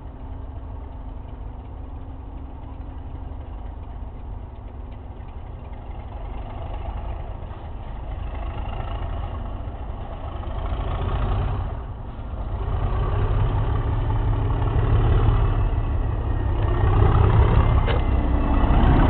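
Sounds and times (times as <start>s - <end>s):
diesel locomotive engine under power: 0.0s - 19.0s.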